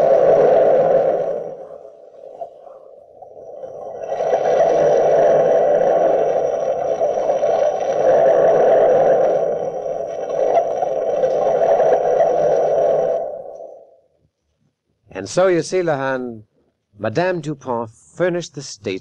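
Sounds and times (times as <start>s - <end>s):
loud sustained drone: 0.0s - 2.1s.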